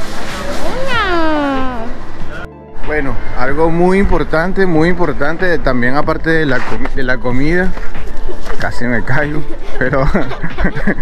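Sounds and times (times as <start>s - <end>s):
drawn-out meow-like call: 0.7s - 2.0s.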